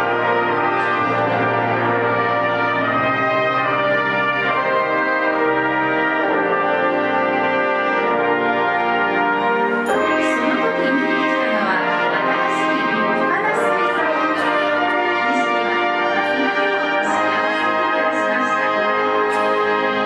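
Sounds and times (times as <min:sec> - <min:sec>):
wind orchestra with brass chords: 0:00.0 - 0:20.0.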